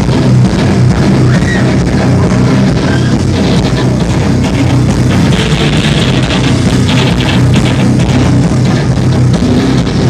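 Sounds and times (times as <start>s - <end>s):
drums: 0.0s - 10.0s
electric guitars: 0.0s - 10.0s.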